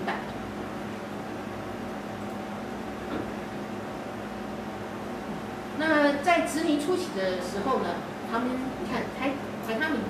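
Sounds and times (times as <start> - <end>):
electrical hum: 0.0 - 10.0.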